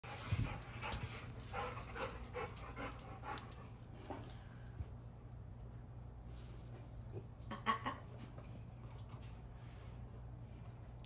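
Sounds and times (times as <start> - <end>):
dog panting: 0.0 - 4.4.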